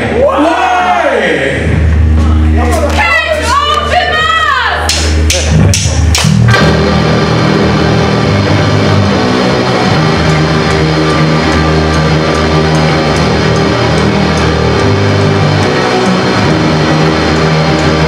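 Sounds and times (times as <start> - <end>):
punk band playing: 1.6 - 18.0
drum hits counting in: 4.9 - 6.8.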